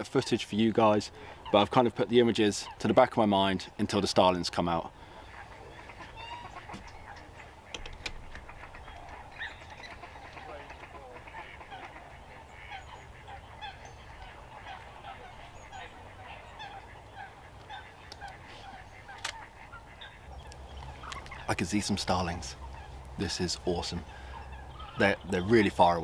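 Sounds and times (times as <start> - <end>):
chorus of wetland birds calling: 0.0 - 26.0
sharp clicks: 7.7 - 9.2, 19.1 - 19.4.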